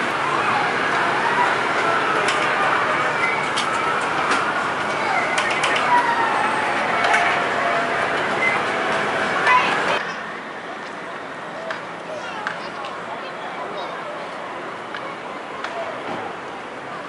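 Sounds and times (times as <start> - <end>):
chatter of voices: 0.0 - 17.0.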